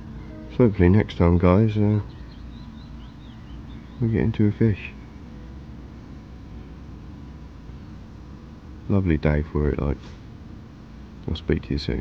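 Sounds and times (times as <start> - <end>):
faint bird chirps: 0.0 - 5.7
low outdoor rumble: 0.0 - 12.0.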